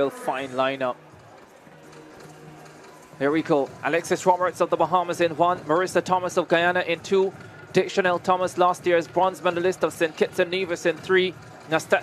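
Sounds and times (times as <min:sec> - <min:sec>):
low stadium wash: 0:00.0 - 0:12.0.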